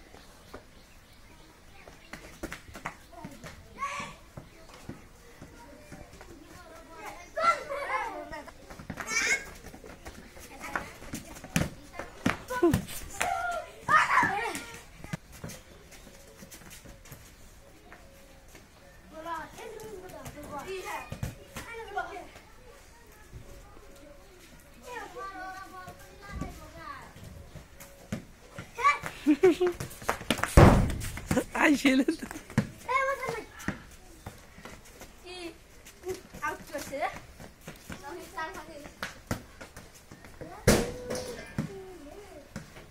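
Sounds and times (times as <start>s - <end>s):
children calling and chattering: 0.0s - 42.9s
ball kicked and bouncing on dirt: 1.8s - 6.5s, 8.4s - 17.3s, 27.5s - 35.2s, 36.0s - 42.9s
children's voices: 3.1s - 15.2s.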